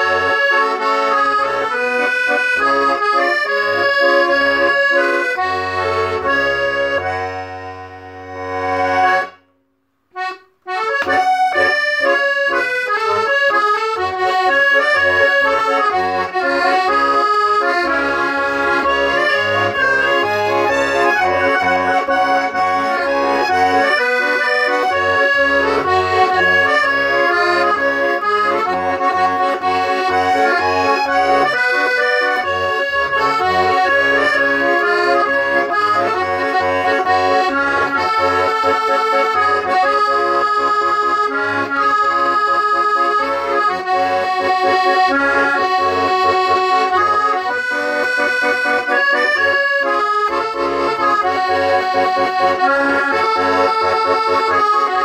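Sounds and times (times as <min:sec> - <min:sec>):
button accordion playing a tune: 0:00.0 - 0:55.0.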